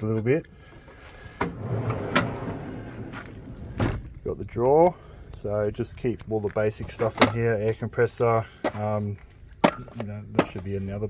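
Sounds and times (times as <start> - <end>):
metal drawer rolling on runners: 1.4 - 3.7.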